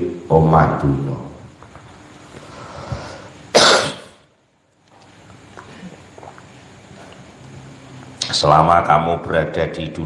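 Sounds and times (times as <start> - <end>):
person coughing: 3.5 - 4.2.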